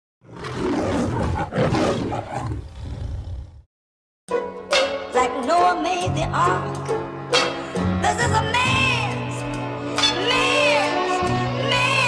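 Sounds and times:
lion roaring: 0.2s - 3.6s.

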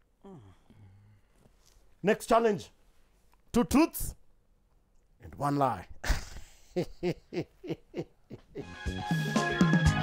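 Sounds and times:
hearty laughter: 6.0s - 8.8s
music jingle: 8.6s - 10.0s.

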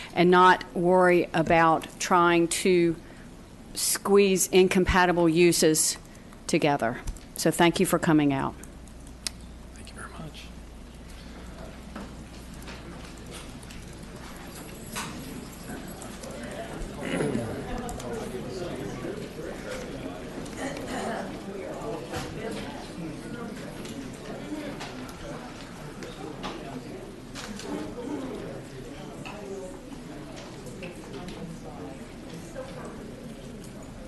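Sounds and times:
low chatter of many people: 0.0s - 34.0s
murmur of people talking: 0.0s - 34.0s.

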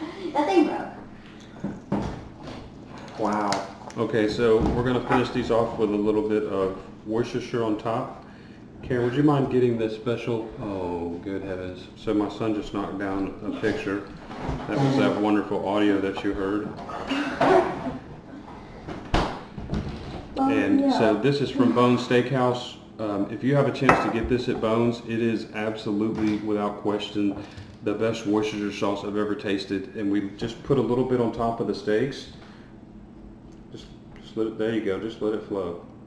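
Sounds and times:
kitchen background noise: 0.0s - 36.0s.

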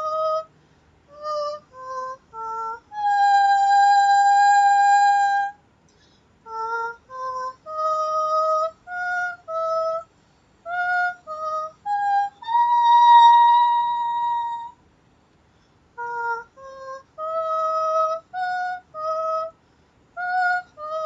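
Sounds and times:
woman singing wordless notes: 0.0s - 5.6s, 6.4s - 14.8s, 16.0s - 21.0s.

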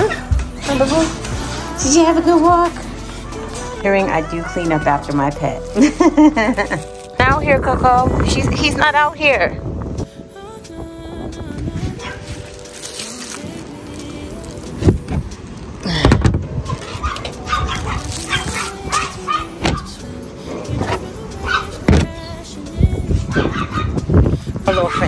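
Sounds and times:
background music: 0.0s - 25.0s
dog barking: 17.0s - 19.9s, 21.4s - 21.8s, 23.3s - 24.0s, 24.7s - 25.0s.

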